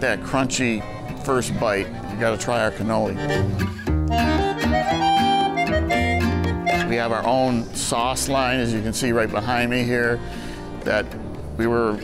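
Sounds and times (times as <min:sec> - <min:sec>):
instrumental background music: 0:00.0 - 0:12.0.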